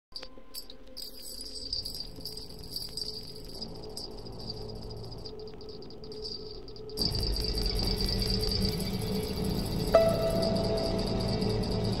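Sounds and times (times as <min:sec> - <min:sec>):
crickets chirping: 0:00.1 - 0:12.0.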